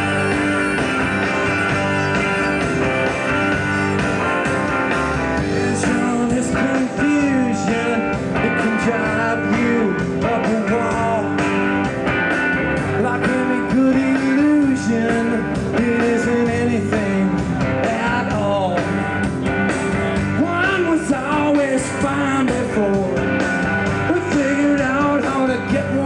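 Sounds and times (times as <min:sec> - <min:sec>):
lead guitar bending notes: 0:00.0 - 0:26.0
rock band playing: 0:00.0 - 0:26.0.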